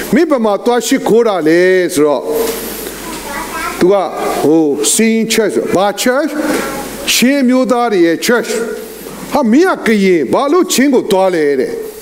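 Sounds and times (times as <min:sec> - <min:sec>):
man speaking: 0:00.0 - 0:02.6, 0:03.8 - 0:12.0.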